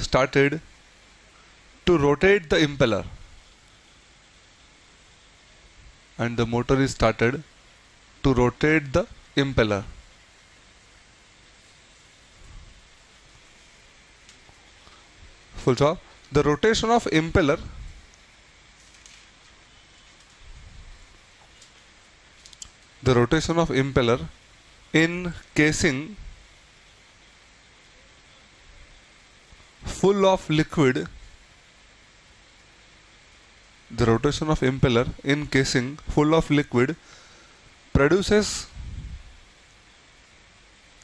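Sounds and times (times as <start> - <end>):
faint steady hiss: 0.0 - 41.0.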